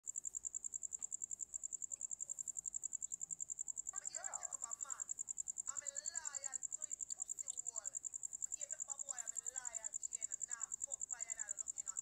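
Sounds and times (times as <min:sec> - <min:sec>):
cricket chirping: 0:00.0 - 0:12.0
person speaking: 0:05.7 - 0:12.0.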